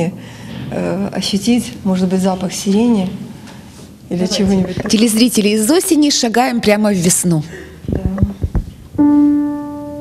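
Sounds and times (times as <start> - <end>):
piano note ringing: 9.0 - 10.0.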